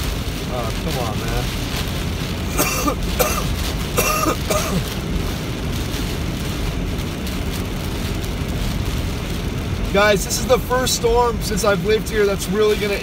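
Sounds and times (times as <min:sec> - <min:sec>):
car cabin low rumble: 0:00.0 - 0:13.0
rain on car: 0:00.0 - 0:13.0
tyres hissing on wet road: 0:00.0 - 0:13.0
person clearing throat: 0:02.6 - 0:04.8.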